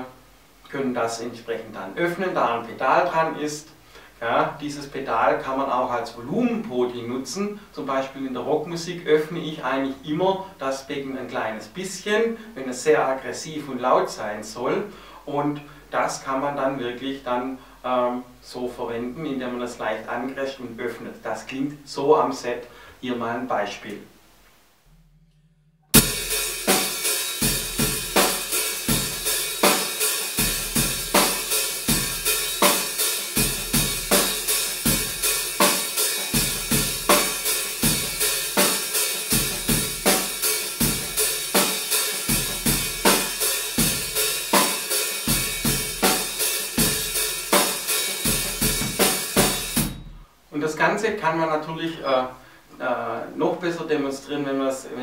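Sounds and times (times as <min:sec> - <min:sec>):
drum kit rock groove: 0:25.9 - 0:50.2
open hi-hat cymbals ringing: 0:25.9 - 0:50.7.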